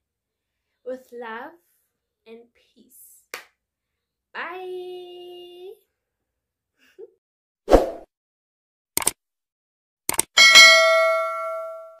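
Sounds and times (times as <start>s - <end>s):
notification bell chime: 10.4s - 12.0s.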